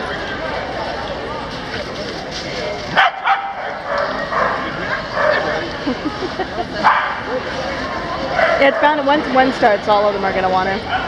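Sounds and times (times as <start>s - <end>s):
crowd chatter: 0.0s - 11.0s
dogs barking and yipping: 3.0s - 5.6s, 6.8s - 7.3s, 7.9s - 9.4s.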